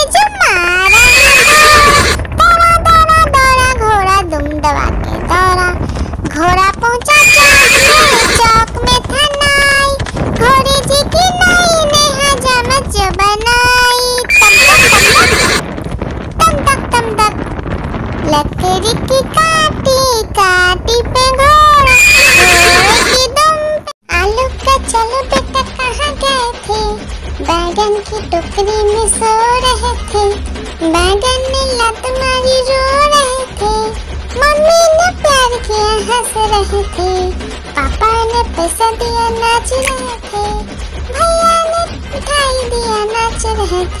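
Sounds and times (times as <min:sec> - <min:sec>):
horse whinnying: 0:00.9 - 0:02.2, 0:07.2 - 0:08.4, 0:14.3 - 0:15.6, 0:21.9 - 0:23.2.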